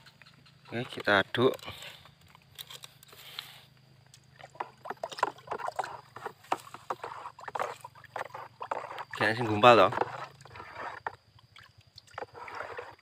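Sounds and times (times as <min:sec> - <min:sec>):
liquid sloshing in a plastic bucket: 0:00.7 - 0:13.0.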